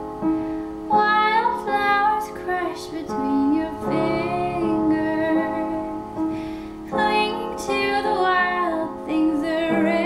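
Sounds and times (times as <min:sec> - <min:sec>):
digital piano chords: 0:00.0 - 0:10.0
woman singing a slow pop song: 0:00.9 - 0:06.2, 0:06.9 - 0:10.0.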